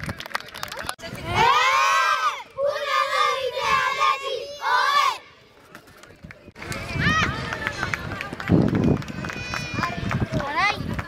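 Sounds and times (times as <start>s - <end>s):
children shouting and calling: 1.2s - 5.4s
children shouting a team chant: 1.3s - 5.3s.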